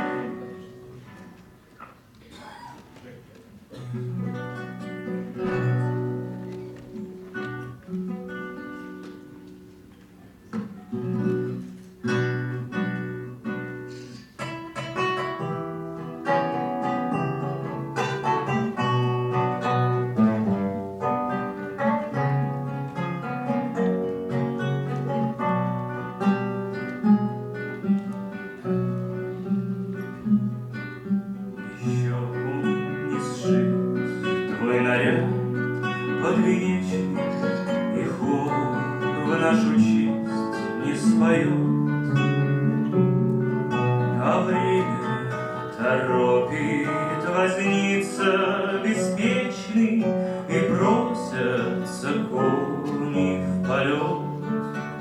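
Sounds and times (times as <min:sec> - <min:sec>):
classical guitars plucking: 0:00.0 - 0:55.0
man singing: 0:31.6 - 0:55.0.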